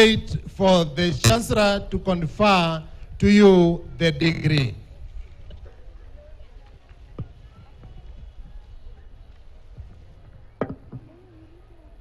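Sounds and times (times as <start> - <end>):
soft knock: 10.6 - 11.1.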